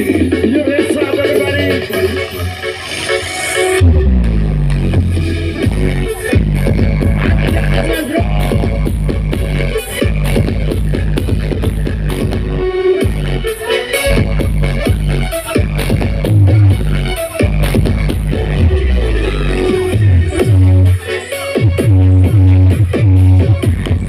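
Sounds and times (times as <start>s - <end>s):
heavy pulsing bass line: 0.0s - 24.0s
loud electronic dance music: 0.0s - 24.0s.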